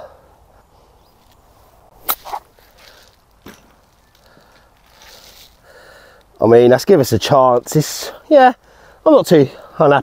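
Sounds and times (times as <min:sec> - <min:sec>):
golf club swish: 0:01.9 - 0:02.8
golf club striking ball: 0:02.0 - 0:02.4.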